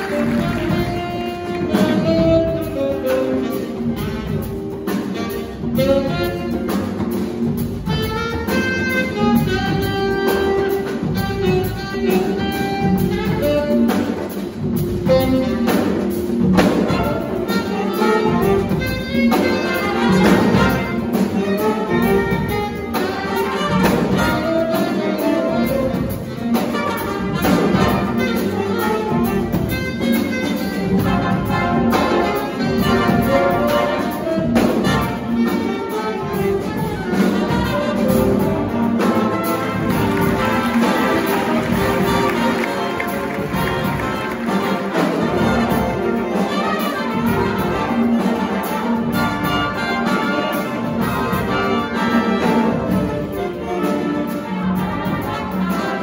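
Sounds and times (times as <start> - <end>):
jazz big band playing: 0.0 - 56.0.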